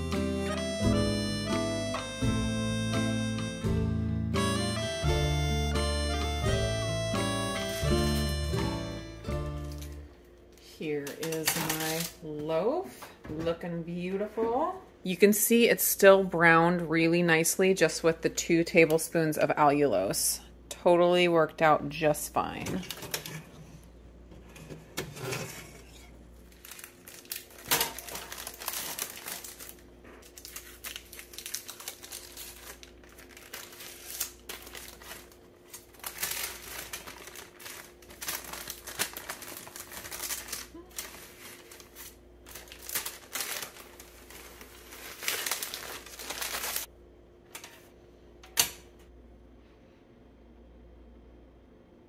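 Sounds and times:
baking paper crinkling: 9.6s - 12.4s, 25.2s - 46.9s.

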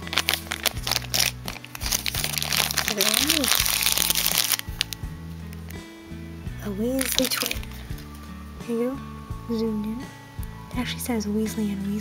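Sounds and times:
plastic wrapper crinkling: 0.0s - 5.8s, 6.9s - 8.2s
background music with bass line: 0.0s - 12.0s.

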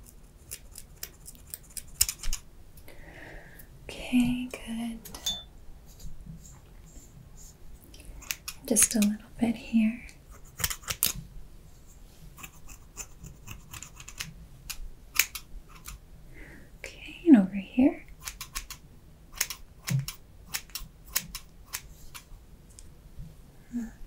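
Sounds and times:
scissors snipping hair: 0.4s - 2.4s, 8.2s - 9.2s, 10.5s - 11.2s, 12.4s - 14.3s.

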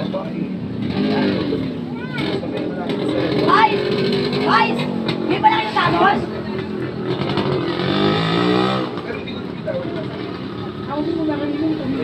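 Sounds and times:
people talking: 0.0s - 7.0s, 8.9s - 12.0s
vehicle engine passing: 0.0s - 12.0s.

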